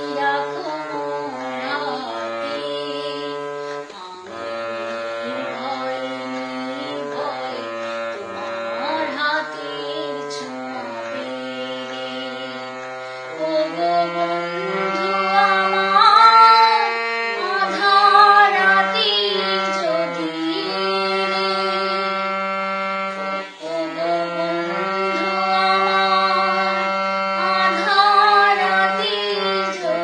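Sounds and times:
woman singing long held notes: 0.0 - 30.0.

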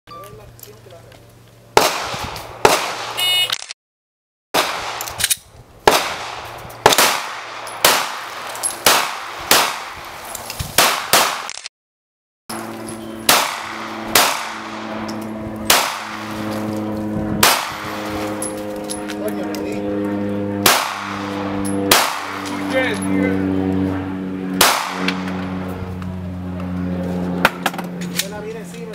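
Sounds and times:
pistol shots: 1.8 - 3.4, 4.6 - 10.0, 10.8 - 11.6, 13.2 - 15.0, 15.7 - 16.4, 17.4 - 18.3, 20.6 - 22.6, 24.6 - 25.4.

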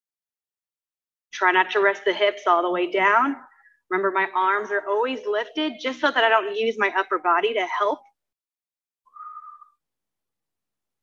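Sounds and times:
short whistle-like tone: 9.1 - 9.9.

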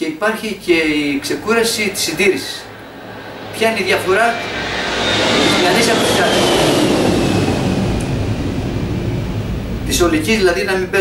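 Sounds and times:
traffic rumble: 0.6 - 11.0.

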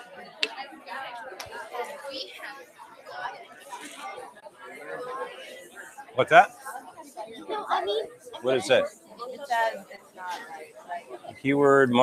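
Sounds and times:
students talking in groups: 0.0 - 12.0.

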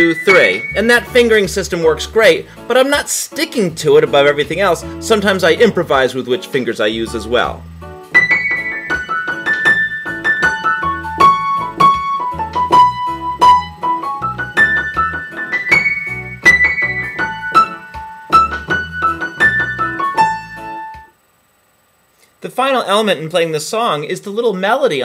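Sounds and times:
backing track with bass and beat: 0.0 - 2.6, 7.1 - 21.2
piano solo: 8.1 - 21.1.

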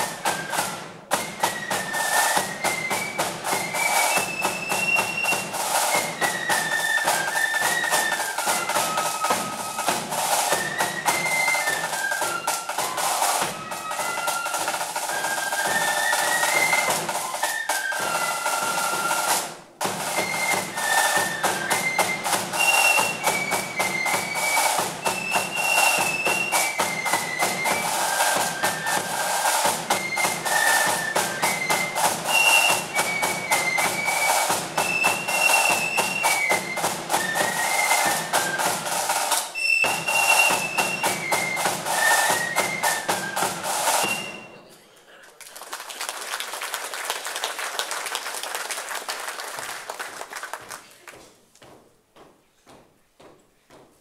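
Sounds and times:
snare and bass drum: 0.0 - 44.6
flute band playing a march: 0.0 - 44.7
applause: 45.1 - 51.4.

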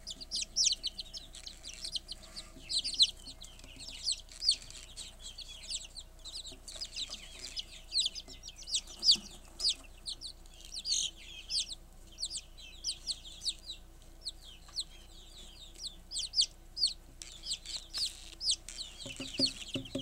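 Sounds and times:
chicks peeping: 0.0 - 20.0.

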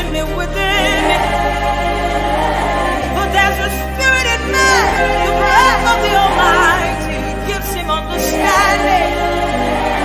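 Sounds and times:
choir of women singing: 0.0 - 10.0
low bass notes: 0.0 - 10.0.

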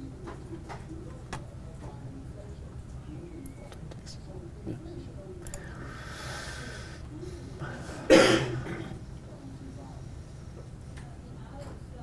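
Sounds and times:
person coughing: 8.0 - 9.0.

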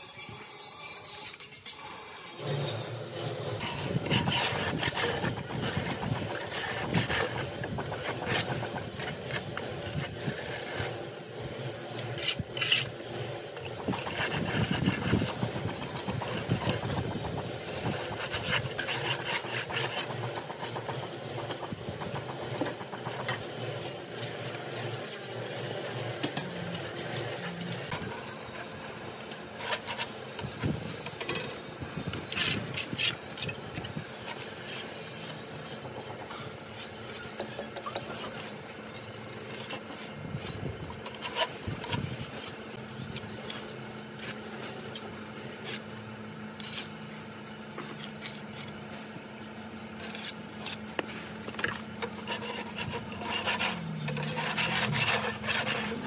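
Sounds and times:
straightedge scraping render: 0.0 - 56.0.

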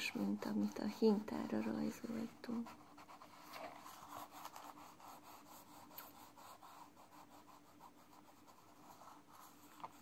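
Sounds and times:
crayon rasping on paper: 0.0 - 10.0.

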